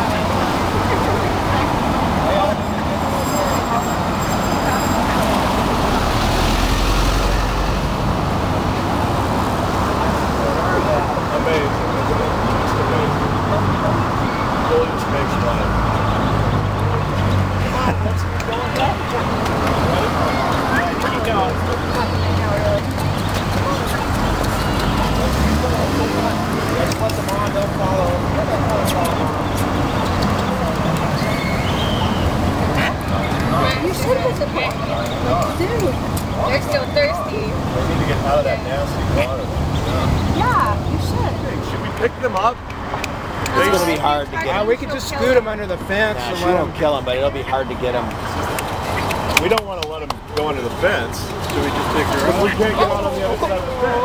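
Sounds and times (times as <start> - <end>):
indistinct voices talking: 0.0 - 54.0
loud background noise: 0.0 - 54.0
road traffic noise: 0.0 - 54.0.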